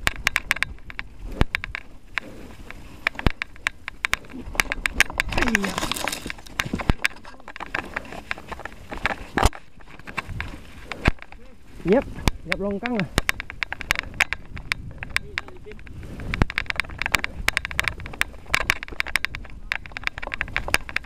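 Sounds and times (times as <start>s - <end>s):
bike rattling over dirt trail: 0.0s - 21.0s.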